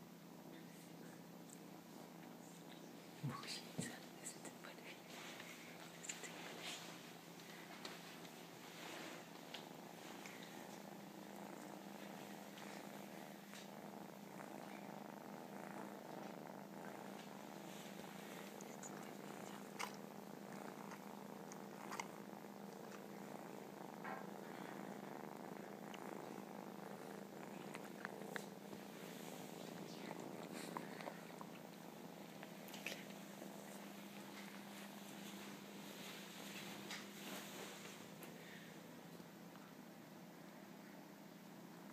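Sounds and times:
kittens purring: 0.0s - 41.9s.

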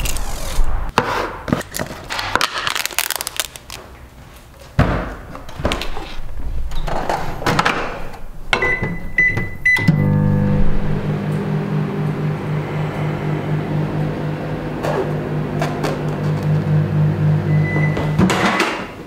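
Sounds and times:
microwave keypad beeps: 8.6s - 10.2s, 17.5s - 18.2s
microwave humming: 8.6s - 19.0s.

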